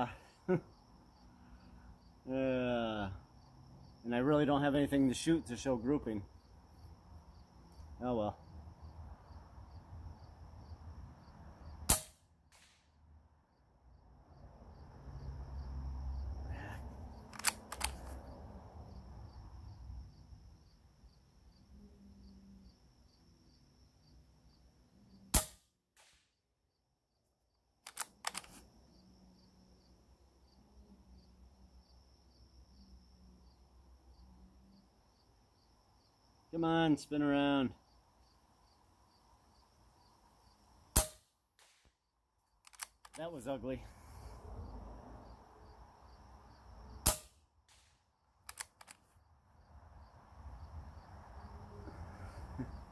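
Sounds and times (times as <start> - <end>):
crickets chirping: 0.0 - 52.9
air rifle shots: 11.9 - 12.9, 25.3 - 26.4, 41.0 - 41.9, 47.0 - 48.9
light clicks: 17.3 - 18.2, 27.8 - 28.6, 42.5 - 43.2, 48.4 - 49.2.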